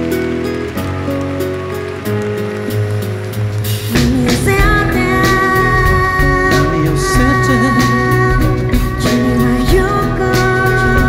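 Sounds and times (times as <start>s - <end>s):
full band playing: 0.0s - 11.0s
sustained keyboard chords: 0.0s - 11.0s
bass line: 3.8s - 11.0s.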